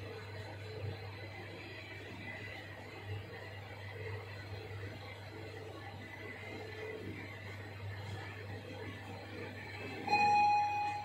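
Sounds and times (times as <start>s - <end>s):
lift arrival chime: 10.0s - 11.0s
lift car low hum: 10.0s - 11.0s.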